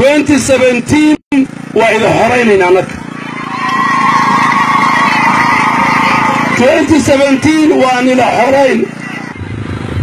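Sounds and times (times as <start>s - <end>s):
vehicle engine running: 0.0s - 10.0s.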